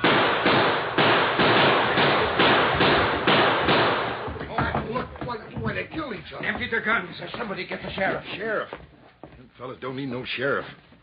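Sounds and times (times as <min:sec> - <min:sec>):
rapid loud gunshots: 0:00.0 - 0:04.7.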